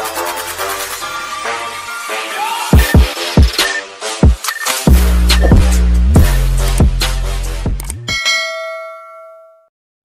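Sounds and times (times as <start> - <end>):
notification bell ding: 8.1 - 9.7.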